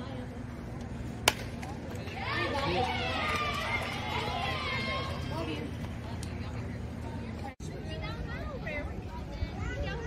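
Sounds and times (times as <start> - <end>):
bat striking ball: 1.2 - 1.7
spectators cheering and yelling: 2.1 - 5.6.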